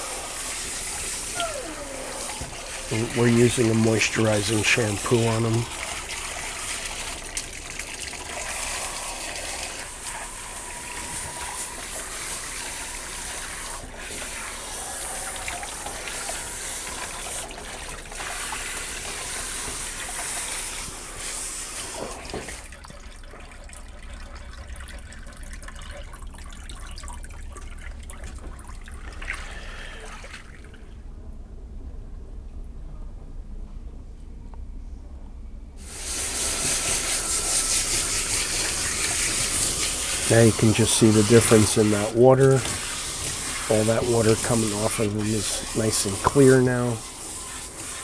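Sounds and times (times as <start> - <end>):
hose spraying water: 0.0 - 22.7, 35.8 - 48.0
water trickling in tub: 0.0 - 31.0.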